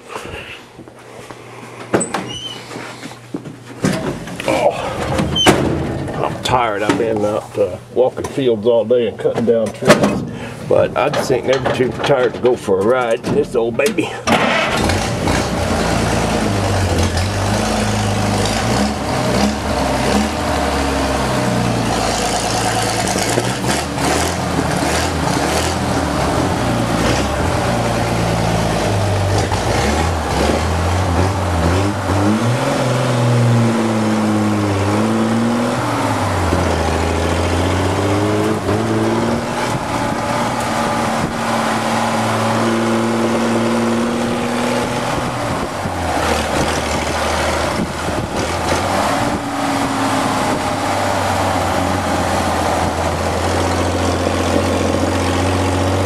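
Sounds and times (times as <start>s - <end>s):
car engine starting and revving: 14.3s - 56.0s.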